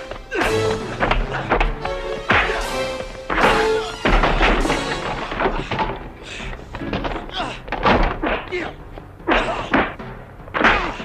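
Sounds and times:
film music score: 0:00.0 - 0:11.0.

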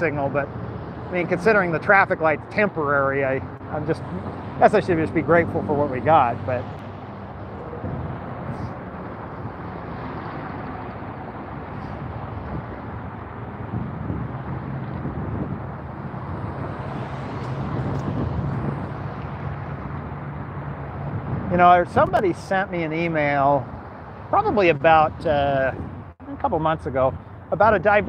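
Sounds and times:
cars driving past: 0:00.0 - 0:28.0.

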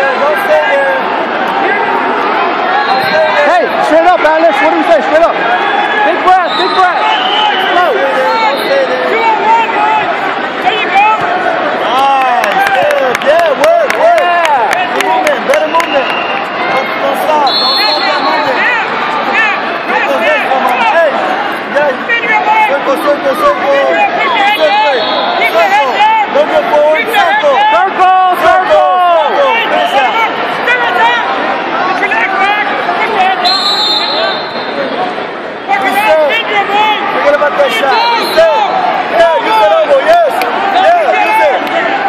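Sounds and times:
people shouting: 0:00.0 - 0:15.4, 0:16.5 - 0:34.8, 0:35.7 - 0:42.0
crowd hubbub: 0:00.0 - 0:42.0.

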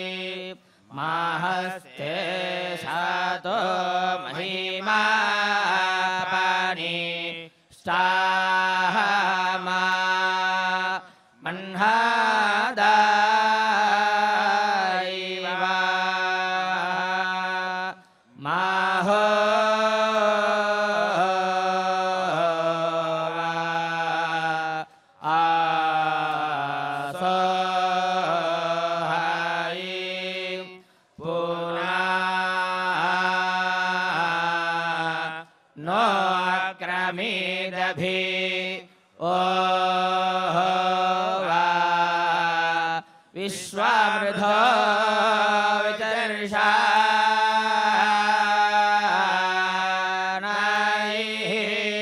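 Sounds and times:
men chanting together: 0:00.0 - 0:52.0.

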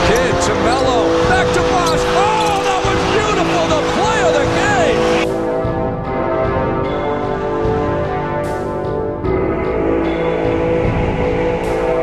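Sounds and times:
crowd noise: 0:00.0 - 0:05.2
music track: 0:00.0 - 0:12.0
sneakers squeaking on court: 0:01.8 - 0:02.9.

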